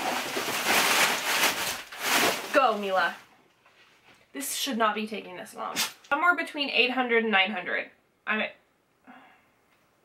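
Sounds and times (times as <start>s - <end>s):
plastic bag rustling and crinkling: 0.0s - 4.1s.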